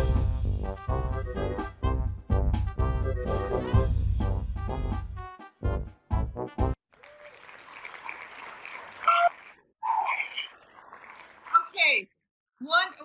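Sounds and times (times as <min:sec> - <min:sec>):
brief cheers: 0:06.9 - 0:07.7
applause: 0:06.9 - 0:11.8.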